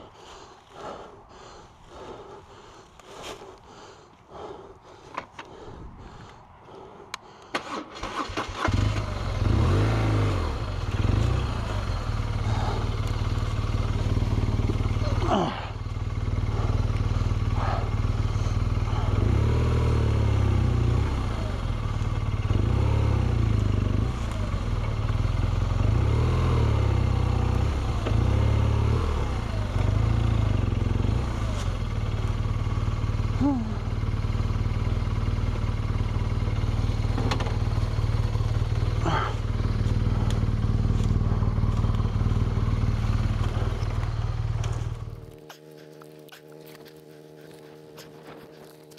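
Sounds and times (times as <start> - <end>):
motorcycle engine starting and running: 0.0 - 48.9.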